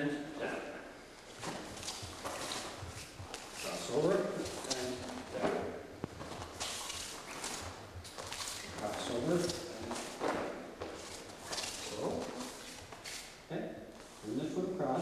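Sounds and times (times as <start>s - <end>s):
bare feet thudding on mat: 1.3s - 3.8s, 4.4s - 13.2s.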